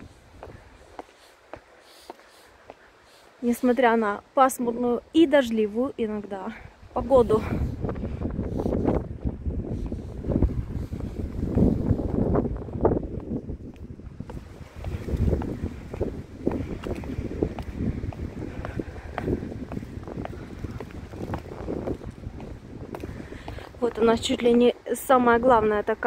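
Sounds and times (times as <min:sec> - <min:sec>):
gusty wind buffeting microphone: 0:00.0 - 0:26.0.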